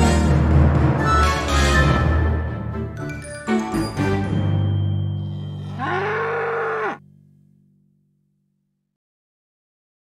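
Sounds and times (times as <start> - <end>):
cow mooing: 5.7 - 7.0.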